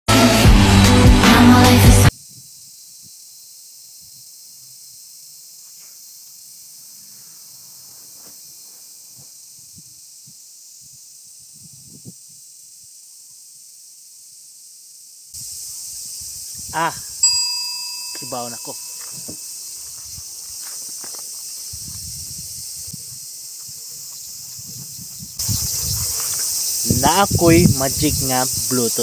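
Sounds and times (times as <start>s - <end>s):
steady high-pitched hiss: 2.0s - 29.0s.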